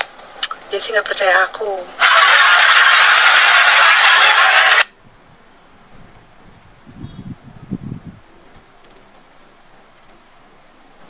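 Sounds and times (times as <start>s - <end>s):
loud steady hiss: 1.9s - 5.9s.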